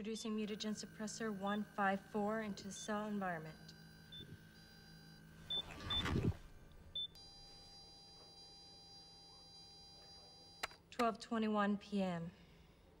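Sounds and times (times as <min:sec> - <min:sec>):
electronic hum of high tones: 0:00.0 - 0:10.8.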